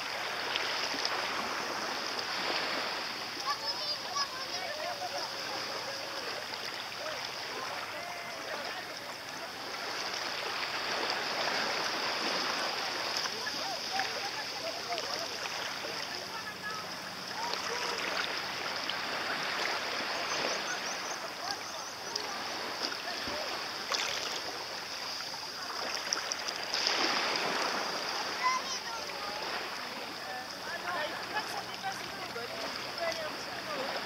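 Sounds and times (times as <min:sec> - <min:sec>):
small waves splashing and lapping: 0:00.0 - 0:34.0
distant voices calling out: 0:03.0 - 0:25.8.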